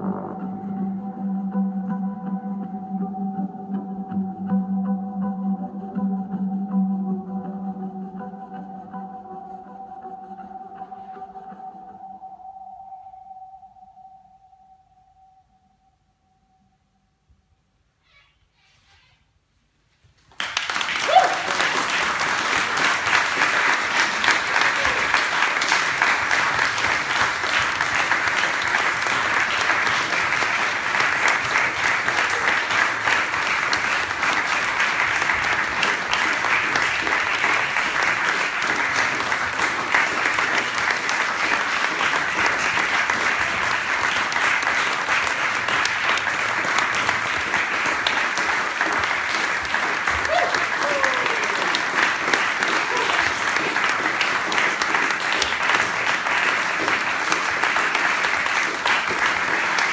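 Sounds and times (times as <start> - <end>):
audience applauding: 20.2 - 59.9.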